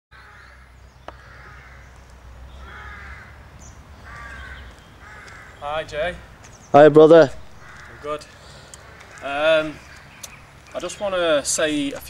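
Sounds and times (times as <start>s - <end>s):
crow cawing: 0.1s - 6.5s, 7.5s - 10.5s.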